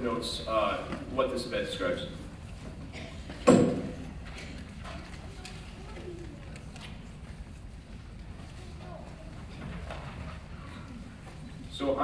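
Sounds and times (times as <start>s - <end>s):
low hum of a hall: 0.0s - 12.0s.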